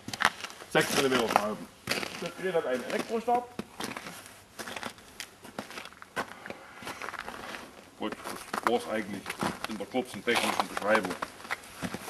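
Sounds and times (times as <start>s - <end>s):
footsteps crunching on snow: 0.0s - 12.0s.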